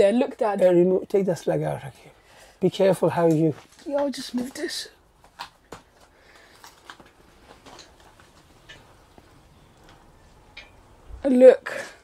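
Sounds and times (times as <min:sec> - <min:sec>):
leaves rustling with light clicks: 0:02.8 - 0:05.6.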